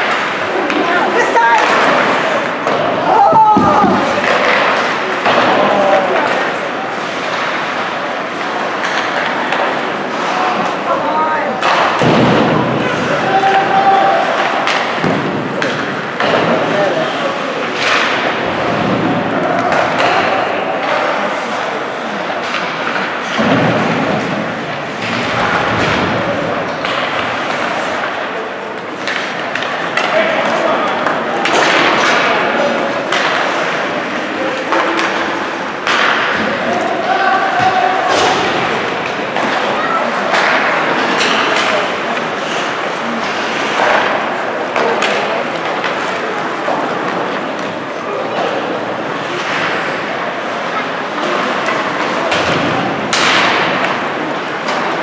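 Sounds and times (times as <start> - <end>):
pucks and sticks knocking: 0.0 - 21.4, 22.3 - 55.0
people shouting: 2.9 - 6.4, 12.7 - 14.8.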